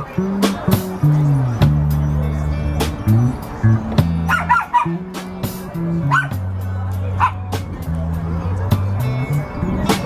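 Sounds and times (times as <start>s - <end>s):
drum kit with cymbals: 0.0s - 10.0s
electric bass: 0.0s - 10.0s
high yelping calls: 4.3s - 5.1s, 6.0s - 6.4s.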